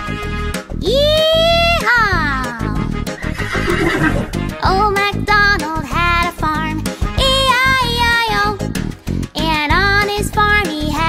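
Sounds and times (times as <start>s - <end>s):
children's music: 0.0s - 11.0s
horse neighing: 3.2s - 4.4s.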